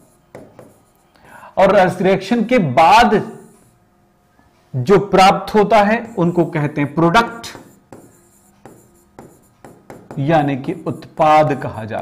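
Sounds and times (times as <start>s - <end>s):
pen writing on a board: 0.0s - 1.1s, 7.3s - 11.2s.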